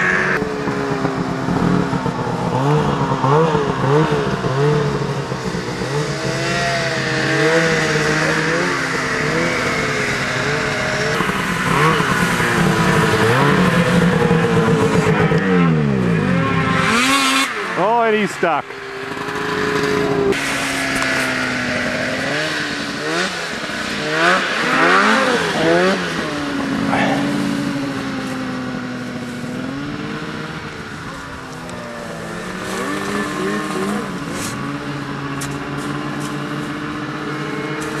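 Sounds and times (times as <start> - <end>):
snowmobile engine revving: 0.0 - 38.0.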